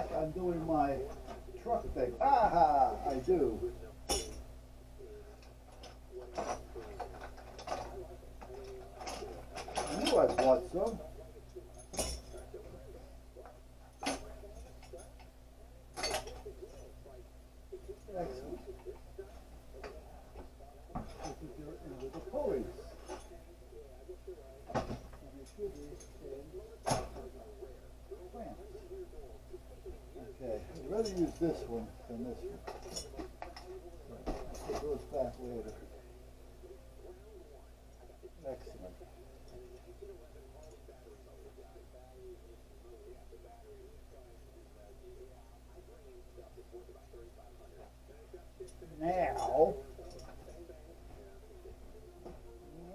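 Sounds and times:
metal hardware clinking: 4.1s - 4.5s, 11.7s - 12.6s, 16.0s - 16.8s, 32.6s - 35.0s.

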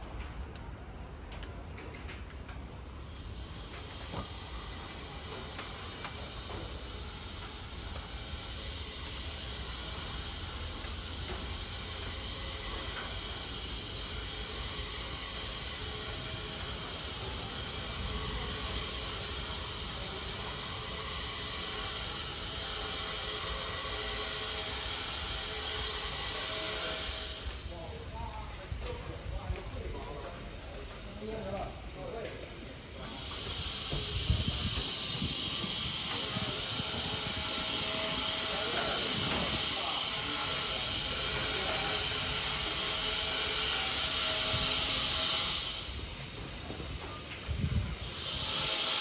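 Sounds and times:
steady high hiss: 2.6s - 49.0s.

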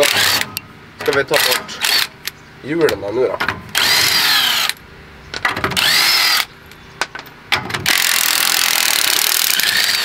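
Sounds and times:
cordless drill spinning: 3.8s - 4.8s, 5.8s - 6.5s, 7.9s - 10.0s.

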